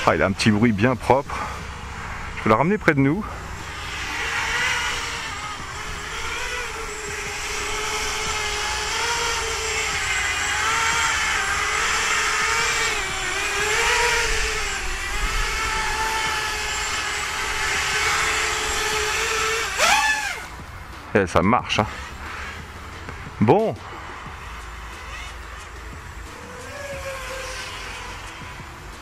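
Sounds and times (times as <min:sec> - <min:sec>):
quadcopter motors whining: 0:00.0 - 0:29.0.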